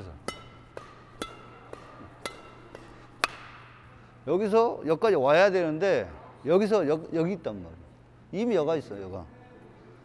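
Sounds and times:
rackets hitting shuttlecock: 0.0 - 4.2.

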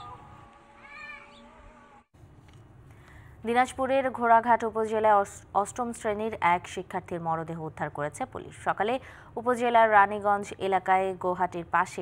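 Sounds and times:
animal cry rising and falling: 0.0 - 2.1
steady multi-tone hum: 0.0 - 12.0.

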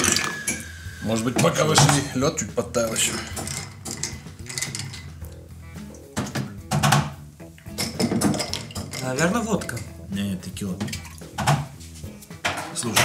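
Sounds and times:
bar spoon clinking ice in glass: 0.0 - 0.8, 2.9 - 5.2
background music: 0.0 - 13.0.

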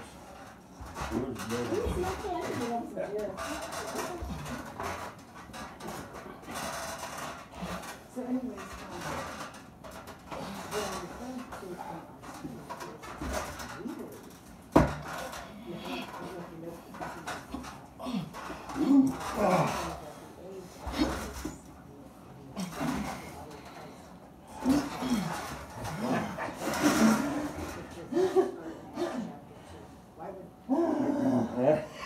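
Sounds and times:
men grunting and straining: 17.4 - 20.0, 22.6 - 23.4, 24.5 - 27.7, 30.7 - 32.0.

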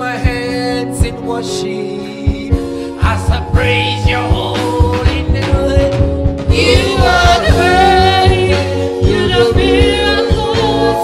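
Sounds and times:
man singing into a microphone: 0.0 - 8.8
live band playing: 0.0 - 11.0
steady drum beat: 0.2 - 1.4, 2.3 - 11.0
other voices singing: 3.0 - 11.0.

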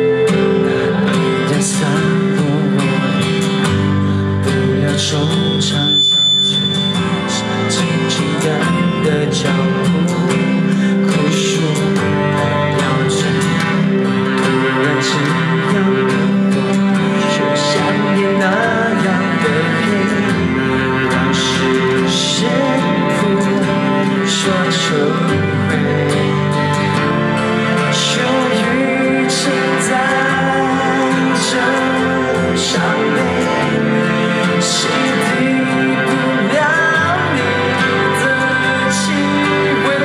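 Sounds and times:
high steady tone: 0.0 - 9.2
guitar and band accompaniment: 0.0 - 40.0
man singing into microphone: 0.0 - 40.0.

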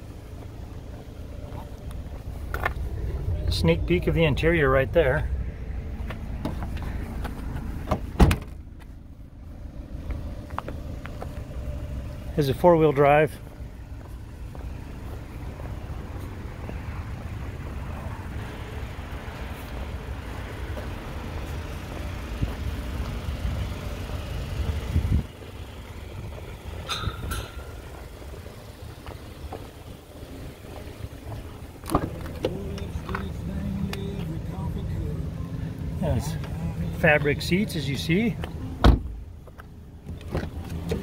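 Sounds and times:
steady low rumble: 0.0 - 41.0
car door clicks: 7.8 - 8.6, 31.8 - 33.3, 38.4 - 39.2.

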